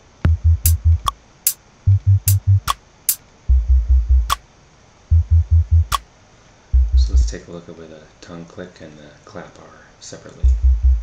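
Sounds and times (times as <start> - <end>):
deep bass hits: 0.3 - 1.1, 1.9 - 2.7, 3.5 - 4.4, 5.1 - 6.0, 6.8 - 7.4, 10.5 - 11.0.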